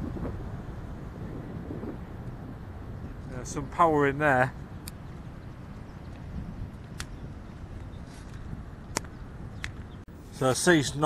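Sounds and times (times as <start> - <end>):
sharp clicks: 6.8 - 7.2, 8.3 - 9.9.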